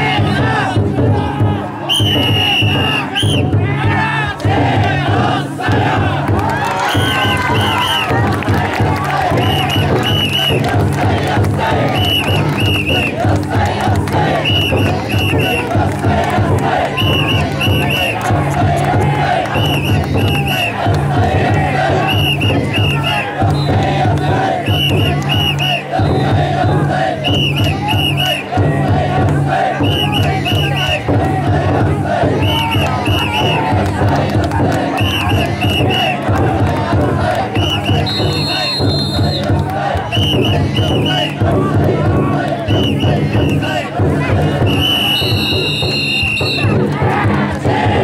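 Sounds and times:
big drum beating: 0.0s - 48.0s
crowd shouting and chanting: 0.0s - 48.0s
short high whistle blasts: 1.9s - 3.4s, 37.6s - 39.4s, 44.7s - 46.7s.

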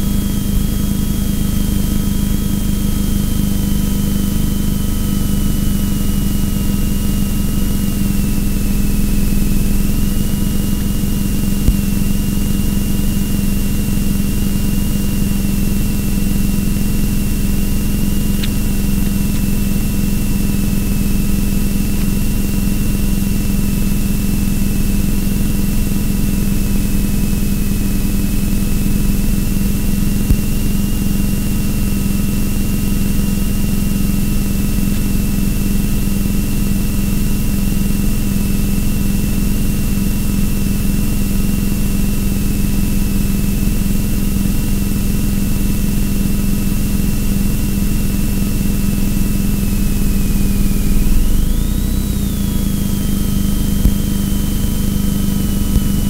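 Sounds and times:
car engine idling and revving: 46.8s - 56.0s.

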